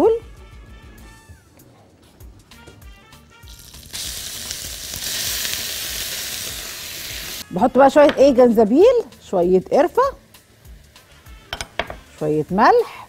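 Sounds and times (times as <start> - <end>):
meat sizzling in a frying pan: 3.5 - 9.0.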